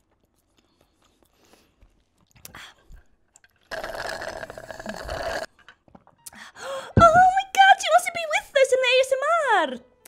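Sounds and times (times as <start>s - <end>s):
slurping through a straw: 3.7s - 5.5s.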